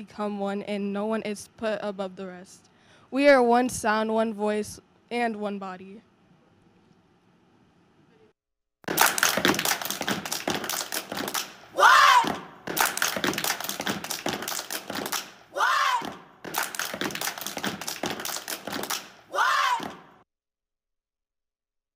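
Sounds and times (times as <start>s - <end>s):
rhythmic foot stomps: 8.8s - 20.2s
hand claps: 8.9s - 15.4s, 16.0s - 20.1s
person shouting a call: 11.8s - 12.5s, 15.6s - 16.2s, 19.3s - 20.0s.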